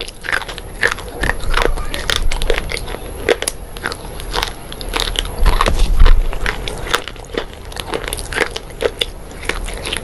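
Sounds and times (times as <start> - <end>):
crunchy chewing: 0.0 - 10.0.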